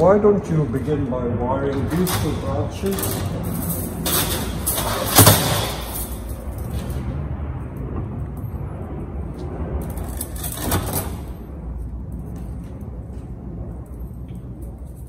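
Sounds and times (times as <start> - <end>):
low rumble: 0.0 - 15.0
wire coil knocking: 1.8 - 7.1.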